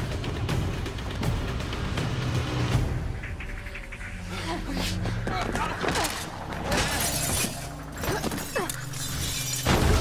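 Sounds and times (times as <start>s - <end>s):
glass shattering: 6.7s - 10.0s.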